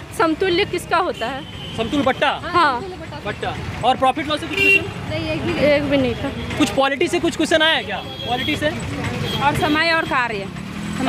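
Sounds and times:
street traffic: 0.0 - 11.0
vehicle engine idling: 0.0 - 11.0
voices talking: 0.1 - 11.0.

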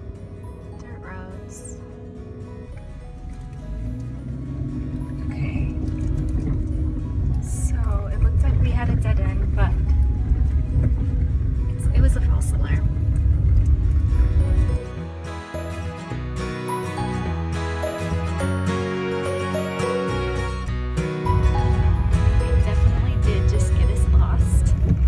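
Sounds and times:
car tyres and engine rumble: 0.0 - 14.8, 21.2 - 25.0
background music: 0.0 - 25.0.

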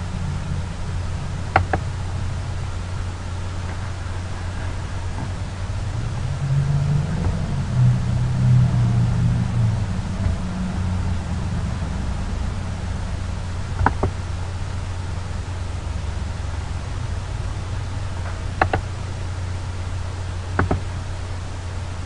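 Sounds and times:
deep rumble: 0.0 - 22.0
low hum and hiss: 0.0 - 22.0.

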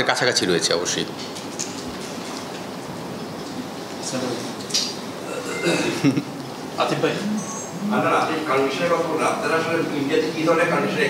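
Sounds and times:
constant room hiss: 0.0 - 11.0.

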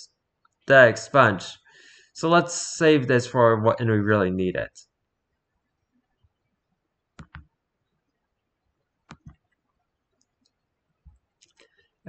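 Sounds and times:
computer mouse clicks: 7.2 - 7.5, 9.1 - 9.6.

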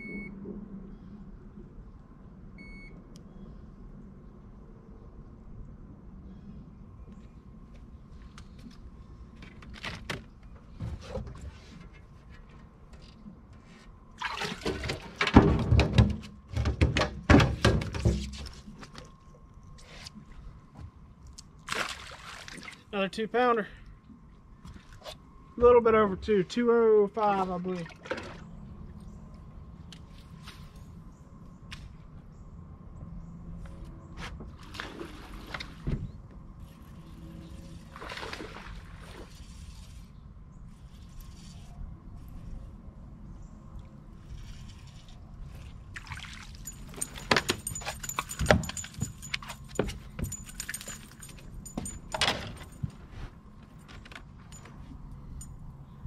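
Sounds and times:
fishing gear clicks and jangles: 46.5 - 56.0.

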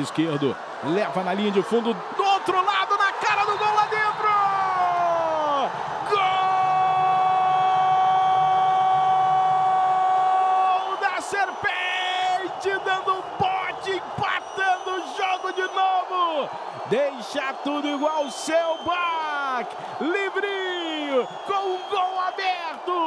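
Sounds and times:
crowd cheering indoors: 0.0 - 23.0.

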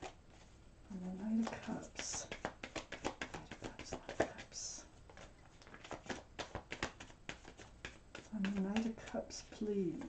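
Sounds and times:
cards being shuffled: 0.0 - 10.0.

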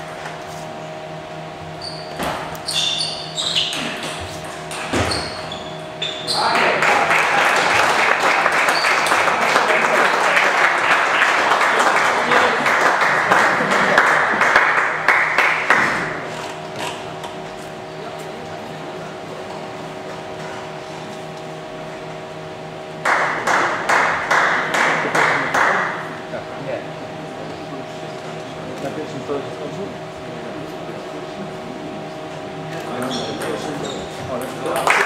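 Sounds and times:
spectators applauding: 6.3 - 16.1, 23.0 - 26.0, 34.6 - 35.0
rhythmic clapping: 6.4 - 16.3, 23.0 - 26.2, 34.4 - 35.0.

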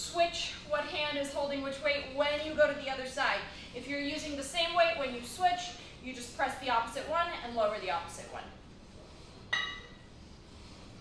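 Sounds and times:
kettlebells clinking together: 9.5 - 10.0.

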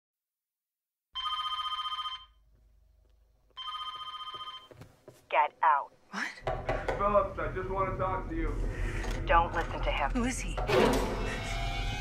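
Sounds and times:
telephone ringing with warble: 1.2 - 2.4, 3.6 - 4.7.

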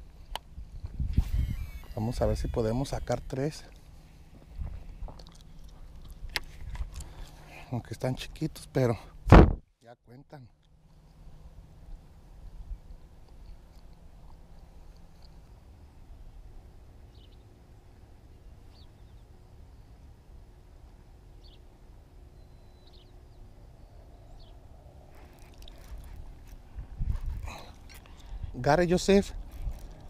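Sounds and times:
wind rumble on microphone: 0.0 - 3.4, 4.4 - 5.3, 9.2 - 9.6, 24.3 - 30.0
rustling and handling noise: 25.1 - 30.0.

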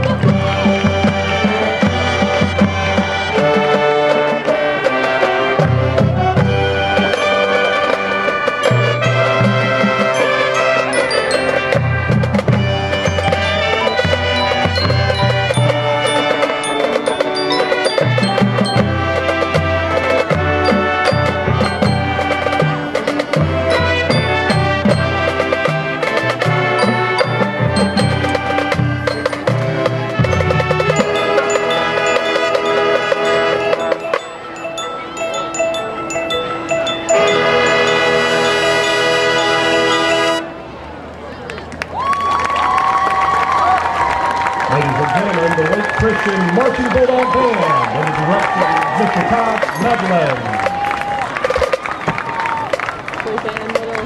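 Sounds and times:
mallet percussion: 0.0 - 40.4, 44.7 - 52.6
brass and woodwinds chords: 0.0 - 41.0.

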